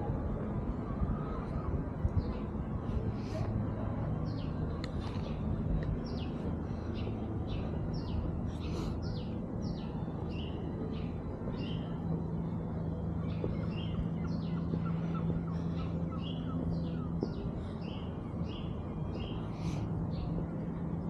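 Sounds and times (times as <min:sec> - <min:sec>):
low street rumble: 0:00.0 - 0:21.0
steady low hum: 0:00.0 - 0:21.0
small birds chirping: 0:01.2 - 0:21.0.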